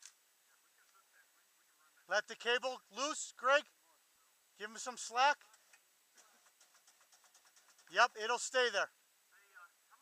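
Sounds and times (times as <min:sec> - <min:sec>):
ratchet clicking rapidly: 0:06.2 - 0:08.1.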